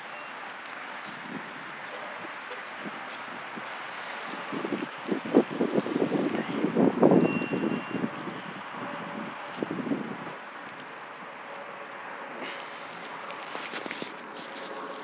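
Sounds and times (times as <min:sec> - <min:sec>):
wind buffeting microphone: 0:01.1 - 0:11.3
steady outdoor hiss: 0:07.8 - 0:15.0.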